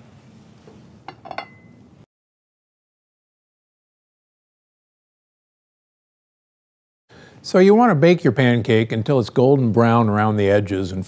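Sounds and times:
metal pan clinking on plate: 1.1 - 1.7.

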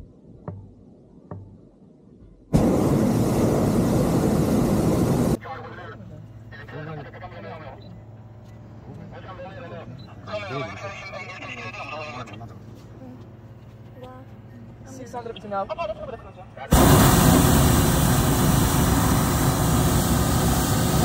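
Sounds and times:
propane burner roaring: 2.6 - 5.4, 16.7 - 21.0.

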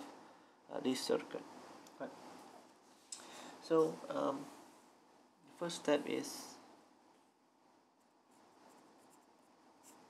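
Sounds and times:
pen scratching on paper: 8.0 - 10.0.

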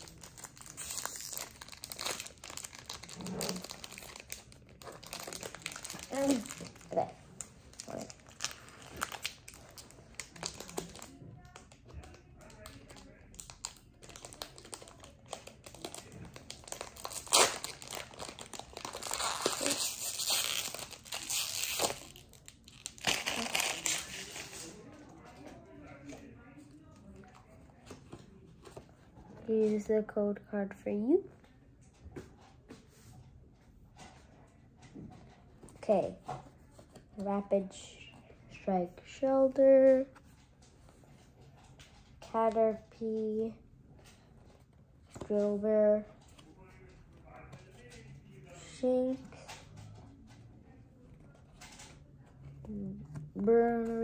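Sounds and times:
foil wrapper crinkling: 0.0 - 7.0, 13.3 - 24.7
foil pack being torn open: 16.6 - 24.1.

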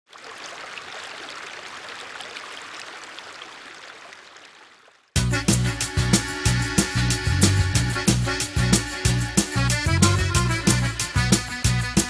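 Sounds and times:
stream rushing over stones: 0.1 - 5.1
small water splashes: 0.1 - 5.2.

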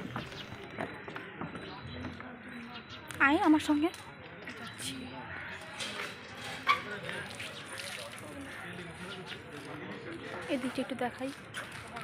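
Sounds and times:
outdoor murmur: 0.0 - 12.0.

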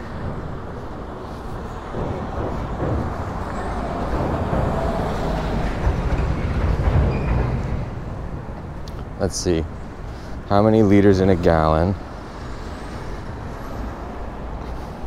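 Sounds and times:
street traffic rumble: 0.0 - 15.0.

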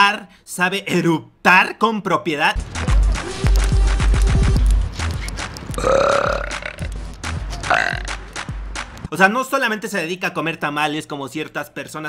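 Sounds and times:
music with heavy bass beat: 2.6 - 9.1
woman burping: 5.8 - 6.9, 7.7 - 8.1.

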